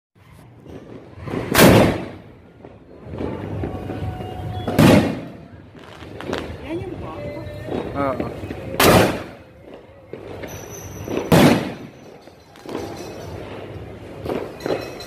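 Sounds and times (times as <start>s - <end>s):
sharp firework cracks: 0.6s - 6.7s, 7.6s - 12.8s
loud firework booms: 0.6s - 9.5s, 10.1s - 12.0s.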